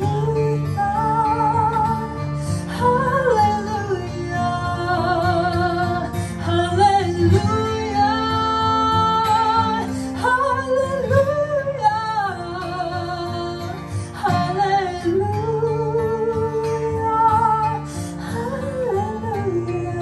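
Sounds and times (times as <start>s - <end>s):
acoustic guitar: 0.0s - 20.0s
woman singing: 0.0s - 20.0s.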